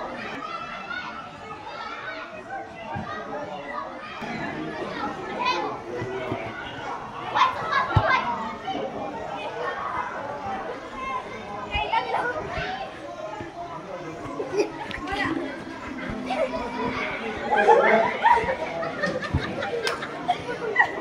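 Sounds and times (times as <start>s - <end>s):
spectators chatter: 0.0s - 21.0s.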